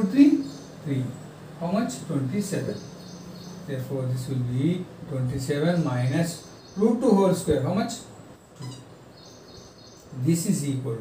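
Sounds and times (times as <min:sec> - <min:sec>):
marker squeaking on whiteboard: 0:08.6 - 0:09.0.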